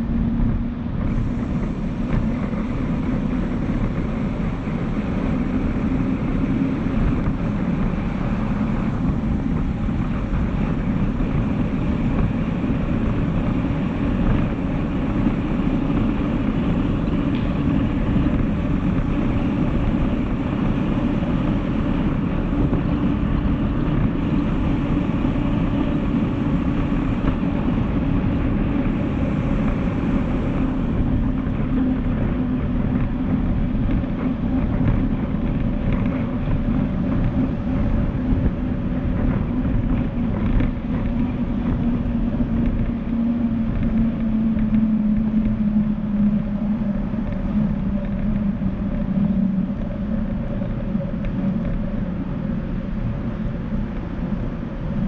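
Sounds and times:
wind on microphone: 0.0s - 55.0s.

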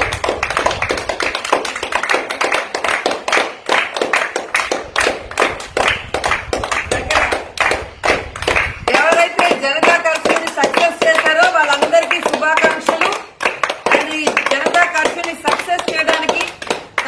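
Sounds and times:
people clapping: 0.0s - 17.0s.

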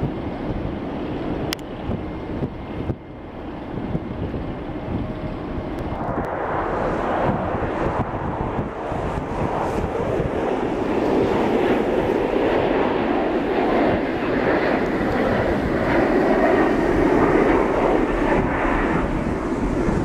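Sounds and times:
jet engine rushing: 0.0s - 20.0s
wind buffeting microphone: 0.0s - 20.0s.

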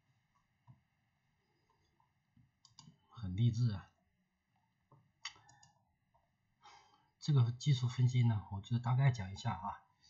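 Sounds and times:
computer clicks: 1.7s - 3.0s, 4.9s - 6.3s.

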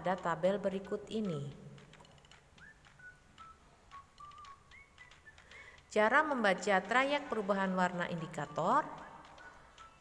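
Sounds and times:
faint whistle-like tones: 2.6s - 5.8s, 8.3s - 10.0s.

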